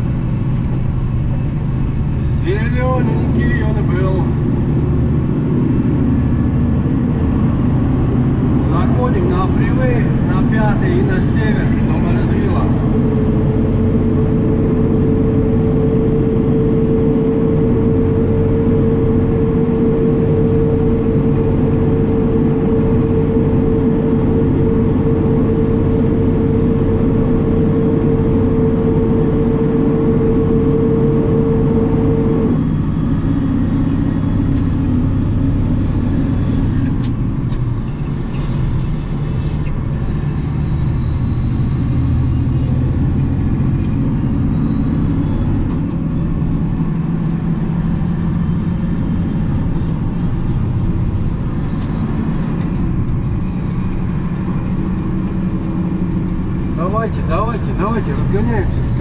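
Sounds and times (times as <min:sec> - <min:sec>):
road noise: 0:00.0 - 0:59.0
steady whine: 0:00.0 - 0:59.0
truck diesel engine: 0:00.0 - 0:59.0.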